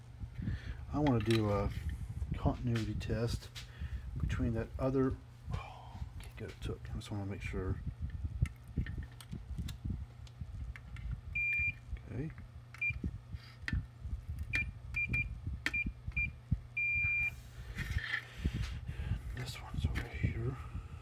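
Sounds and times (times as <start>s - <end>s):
continuity tester beeping: 11.4s - 11.8s, 12.8s - 13.2s, 14.5s - 17.4s.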